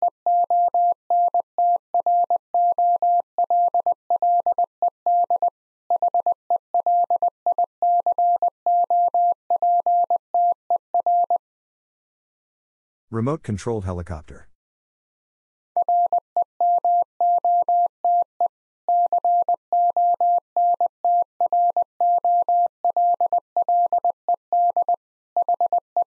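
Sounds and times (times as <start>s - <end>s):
morse code tone: 15.8s - 18.3s.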